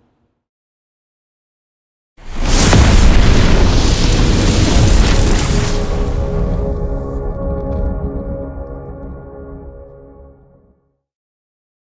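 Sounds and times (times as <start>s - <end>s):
fiery explosion burst: 2.2s - 8.2s.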